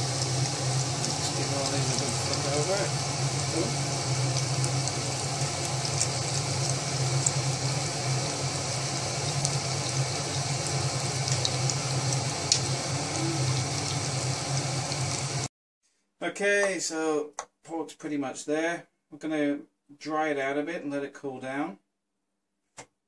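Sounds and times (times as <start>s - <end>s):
meat sizzling on a grill plate: 0.0s - 15.5s
steady low hum: 0.0s - 15.5s.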